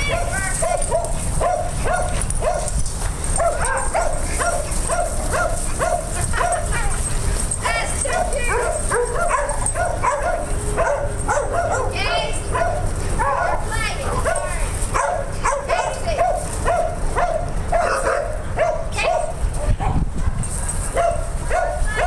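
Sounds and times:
dog barking in high yips: 0.0s - 22.0s.

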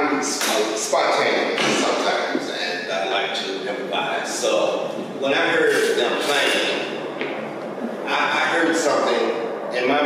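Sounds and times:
man talking in echoing room: 0.0s - 7.2s, 8.0s - 10.0s.

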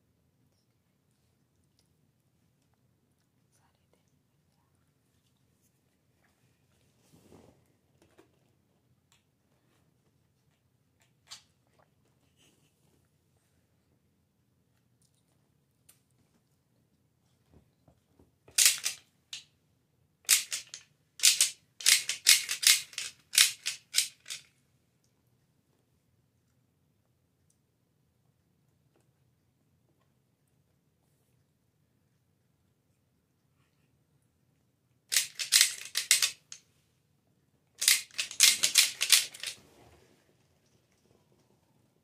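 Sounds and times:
plastic candy wrapper crinkling: 35.1s - 36.6s, 37.8s - 39.6s.

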